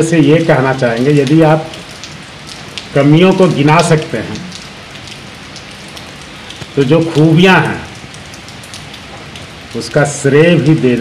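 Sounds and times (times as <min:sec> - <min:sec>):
man speaking: 0:00.0 - 0:01.7, 0:02.9 - 0:04.5, 0:06.8 - 0:07.9, 0:09.7 - 0:11.0
background hiss: 0:00.0 - 0:11.0.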